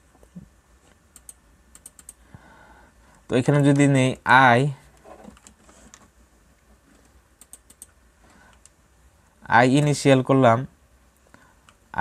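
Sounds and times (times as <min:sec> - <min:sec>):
keyboard keystroke clicks: 0:01.1 - 0:02.2.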